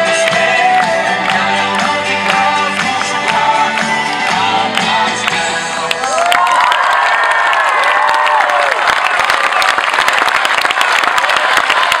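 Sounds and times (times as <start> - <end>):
audience clapping: 0.0 - 12.0
audience cheering and whooping: 5.9 - 12.0.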